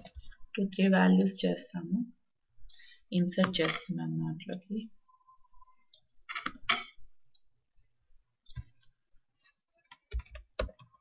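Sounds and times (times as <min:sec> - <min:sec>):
keyboard typing clicks: 0:08.4 - 0:08.8, 0:09.8 - 0:11.0.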